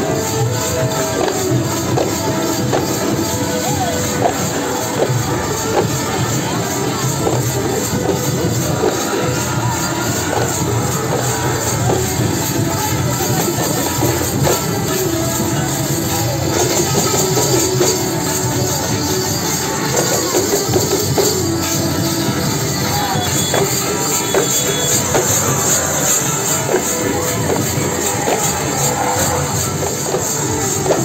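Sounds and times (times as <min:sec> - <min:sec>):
brass cymbals clashing: 0:00.0 - 0:31.0
drums: 0:00.0 - 0:31.0.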